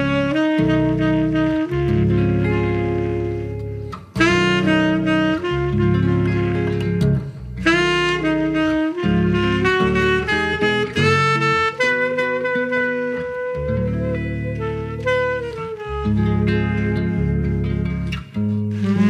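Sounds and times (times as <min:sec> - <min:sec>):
guitar chords: 0:00.0 - 0:19.0
tenor saxophone jazz ballad: 0:00.0 - 0:19.0.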